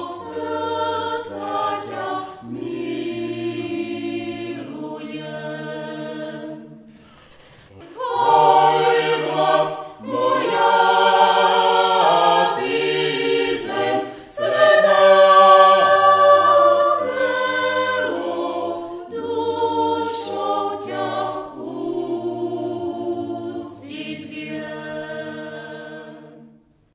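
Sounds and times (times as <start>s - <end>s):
choir singing in harmony: 0.0s - 26.9s.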